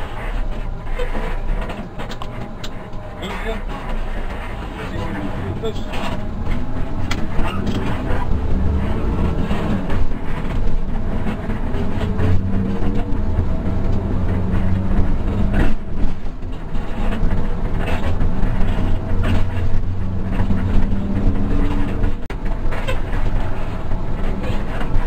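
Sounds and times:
diesel coach engine running: 0:00.0 - 0:25.0
road noise: 0:00.0 - 0:25.0.

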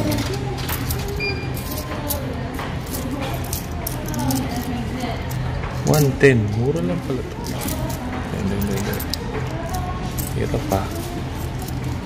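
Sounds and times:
coins clicking and clinking: 0:00.0 - 0:12.0.

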